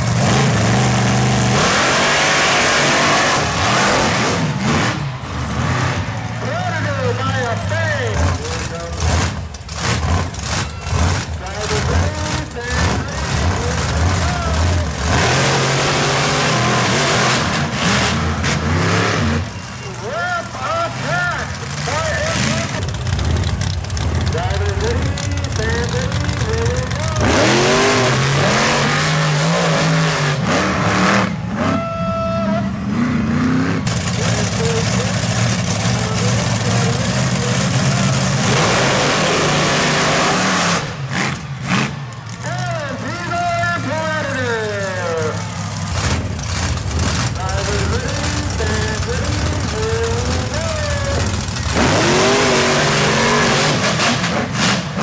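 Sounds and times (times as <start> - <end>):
monster truck engines revving: 0.0 - 55.0.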